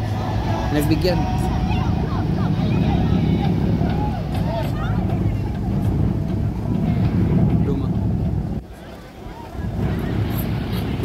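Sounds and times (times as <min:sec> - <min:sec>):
boat engine rumble: 0:00.0 - 0:11.0
people talking: 0:00.2 - 0:11.0.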